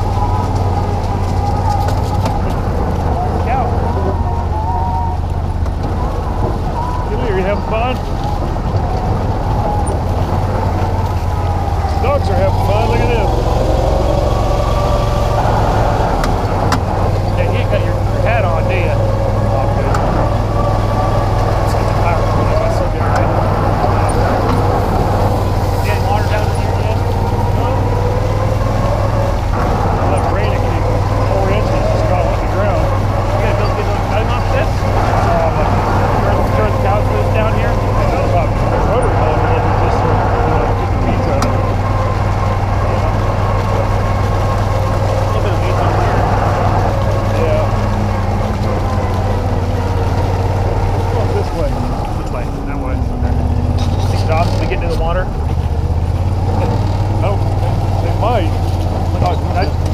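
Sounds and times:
engine whine: 0:00.0 - 0:59.9
vehicle engine running: 0:00.0 - 0:59.9.

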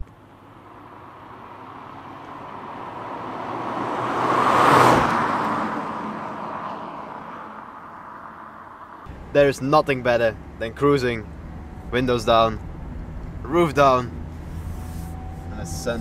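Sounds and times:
road noise: 0:00.0 - 0:16.0
car driving past: 0:00.7 - 0:09.4.

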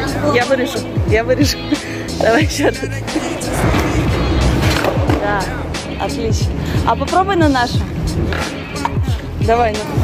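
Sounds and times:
skateboard wheels rolling on concrete: 0:03.2 - 0:05.8, 0:07.0 - 0:10.0.

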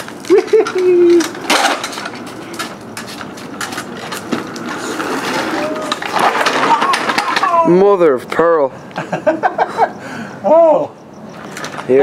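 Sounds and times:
clicks and rattles: 0:00.0 - 0:07.7
plastic wheels skidding on concrete: 0:00.0 - 0:08.5.

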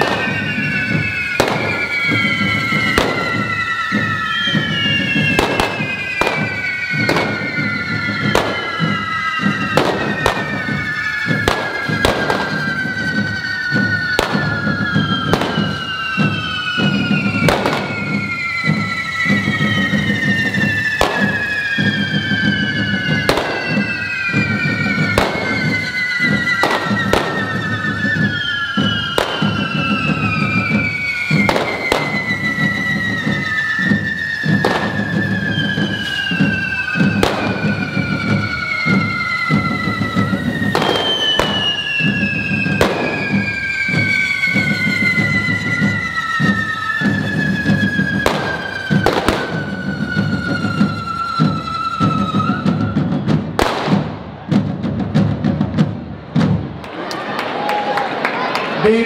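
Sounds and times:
firework bangs: 0:00.0 - 0:59.0
fireworks rushing noise: 0:00.0 - 0:59.0
fireworks whistling: 0:00.0 - 0:59.0.

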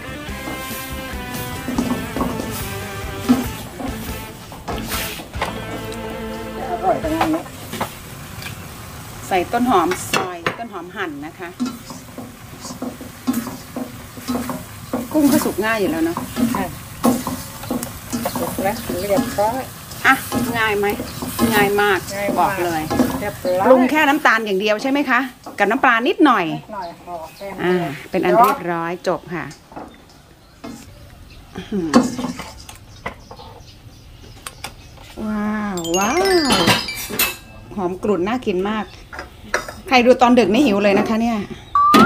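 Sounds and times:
spatula scraping a wok: 0:00.0 - 0:08.1, 0:11.5 - 0:24.2, 0:32.0 - 0:32.8
food sizzling: 0:00.0 - 0:31.0, 0:35.2 - 0:38.9.

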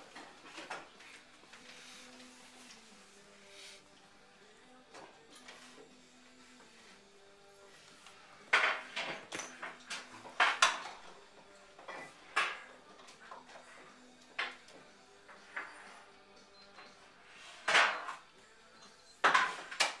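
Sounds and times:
faint background music: 0:00.0 - 0:20.0.

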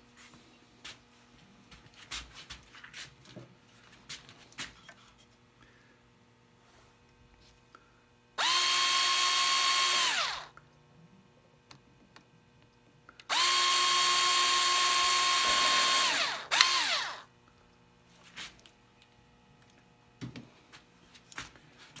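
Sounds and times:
cordless drill whining into wood: 0:08.4 - 0:10.6, 0:13.3 - 0:17.3.

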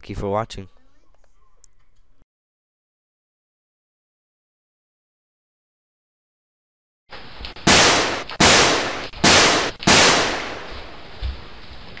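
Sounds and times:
faint room sound: 0:00.0 - 0:02.2
gunshot bangs: 0:07.7 - 0:10.7.

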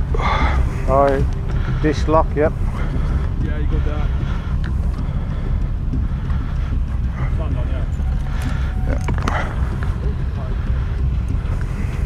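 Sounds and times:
motorcycle engine idling: 0:00.0 - 0:12.0
wind buffeting microphone: 0:00.0 - 0:12.0.

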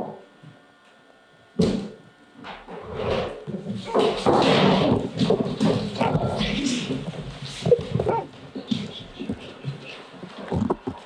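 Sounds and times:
dog whining: 0:07.6 - 0:09.3.

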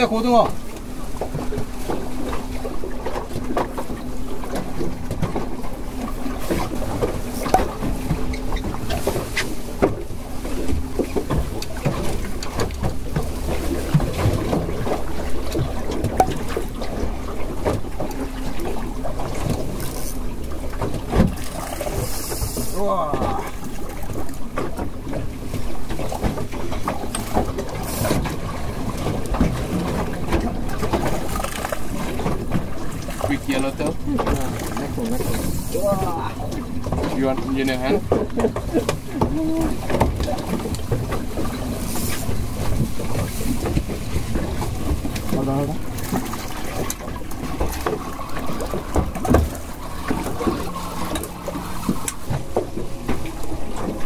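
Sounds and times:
water noise around boat: 0:00.0 - 0:54.0
wind: 0:00.0 - 0:54.0.

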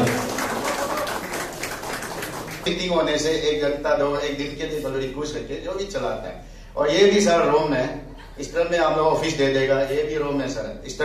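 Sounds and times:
audience applause: 0:00.0 - 0:02.7.

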